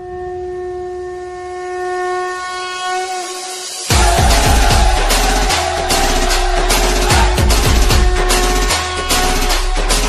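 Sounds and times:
steady horn-like tone: 0.0s - 9.4s.

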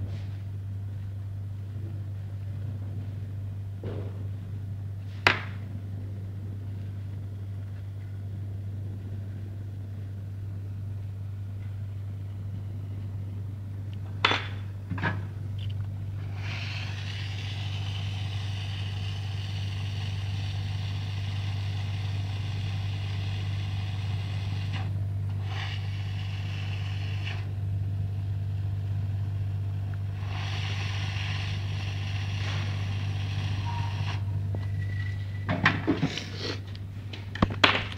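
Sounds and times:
low electrical hum: 0.0s - 37.9s
hot air blower hissing: 16.1s - 36.8s.

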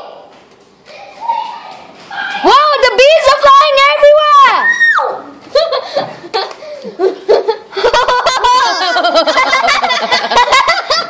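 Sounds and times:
people laughing: 5.5s - 11.0s.

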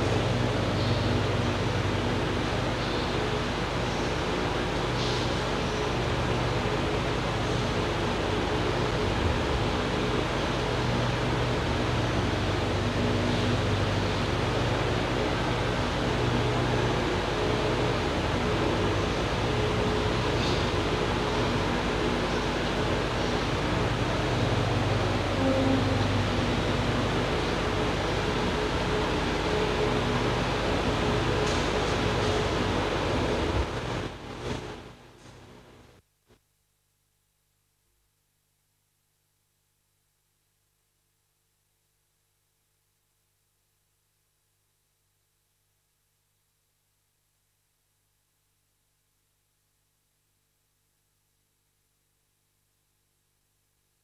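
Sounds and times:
low room hum: 0.0s - 54.0s.

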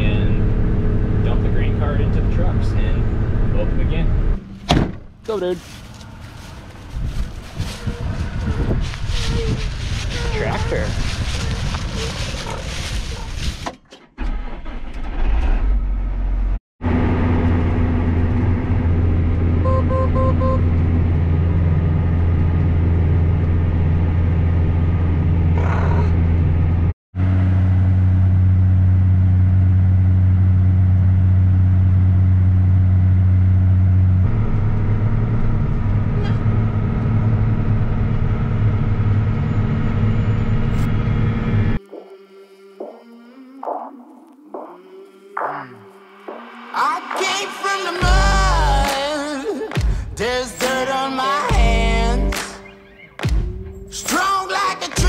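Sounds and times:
tractor engine running: 15.9s - 25.6s, 47.9s - 50.8s
quick beeps: 19.6s - 20.6s.

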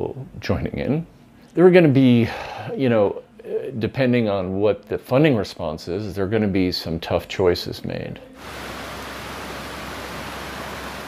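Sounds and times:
brook flowing water: 8.4s - 11.0s.

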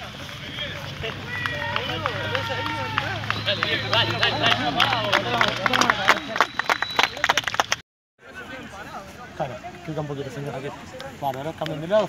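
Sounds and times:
men shouting: 0.4s - 6.1s.

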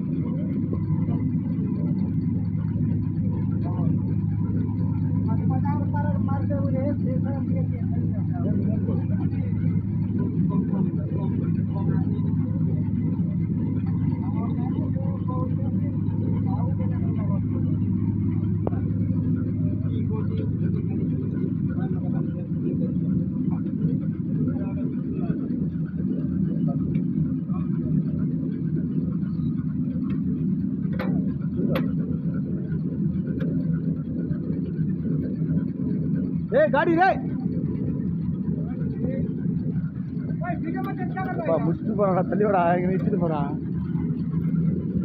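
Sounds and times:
machinery hum: 0.0s - 45.0s.

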